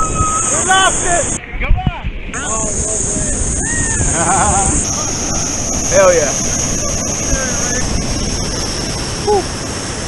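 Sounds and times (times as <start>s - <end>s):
waterfall rushing into a pool: 0.0s - 1.4s, 2.3s - 10.0s.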